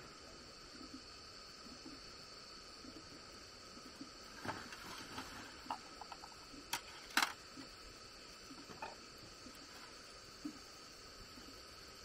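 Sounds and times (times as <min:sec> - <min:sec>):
faint high hum: 0:00.0 - 0:12.0.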